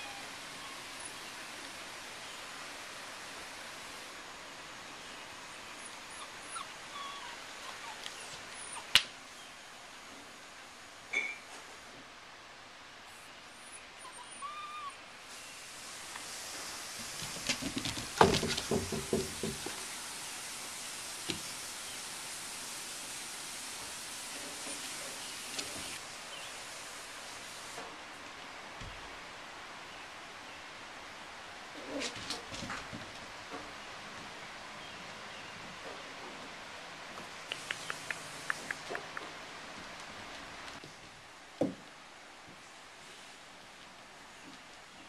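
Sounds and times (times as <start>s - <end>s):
faint steady hiss: 0.0s - 45.0s
puppies scuffling on concrete: 16.9s - 19.9s
knocks and scrapes: 17.1s - 19.8s.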